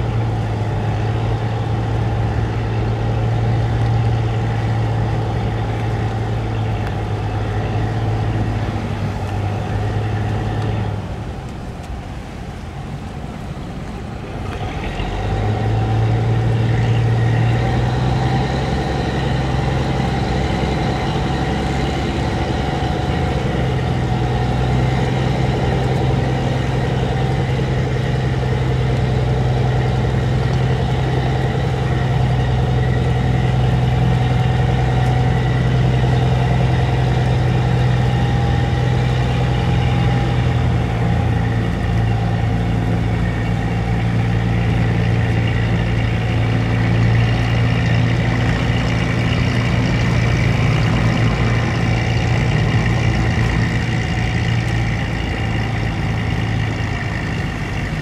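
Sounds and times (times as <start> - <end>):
heavy diesel engine drone: 0.0 - 58.0.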